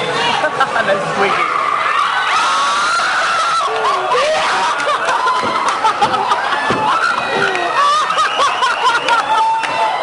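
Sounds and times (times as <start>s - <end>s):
group of people laughing and shrieking: 0.0s - 10.0s.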